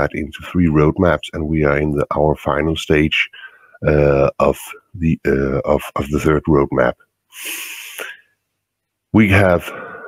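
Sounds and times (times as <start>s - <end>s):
man breathing in: 7.3s - 8.4s, 9.7s - 10.0s.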